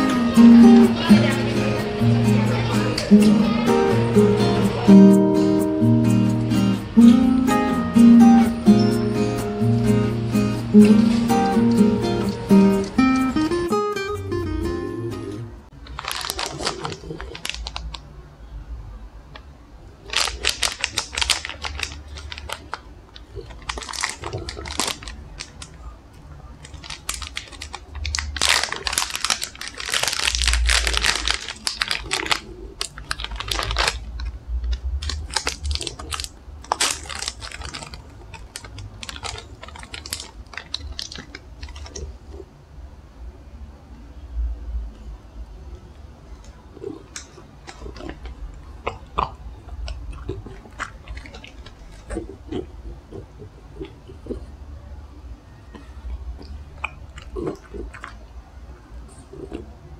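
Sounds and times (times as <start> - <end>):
acoustic guitar music: 0.0 - 15.8
plastic packets crinkling: 15.8 - 18.1, 20.0 - 42.2, 46.9 - 52.3.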